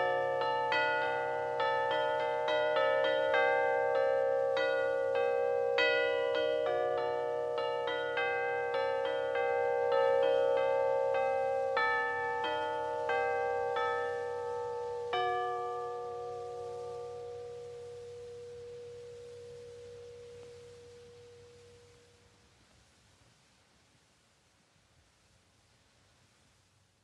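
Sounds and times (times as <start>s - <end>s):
bells struck ringing: 0.0s - 22.0s.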